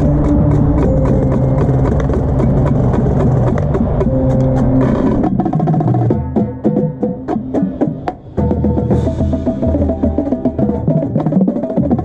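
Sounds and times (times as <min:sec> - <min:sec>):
marching percussion ensemble: 0:00.0 - 0:12.0
tenor drums rapid strokes: 0:00.0 - 0:12.0.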